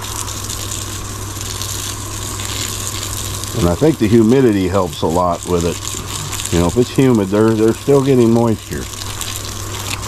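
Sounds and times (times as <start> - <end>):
steady low hum: 0.0 - 10.0
water stream splashing on soil: 0.0 - 10.0.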